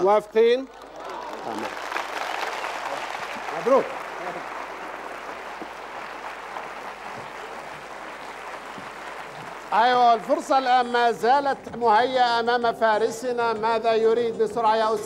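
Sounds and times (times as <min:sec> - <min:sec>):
audience applauding: 0:00.0 - 0:11.2.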